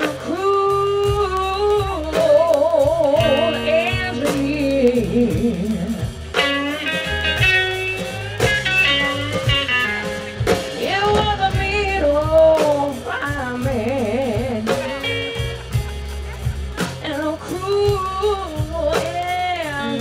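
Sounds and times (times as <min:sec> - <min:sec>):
drum kit: 0:00.0 - 0:20.0
electric bass: 0:00.0 - 0:20.0
electric guitar lead line: 0:00.0 - 0:20.0.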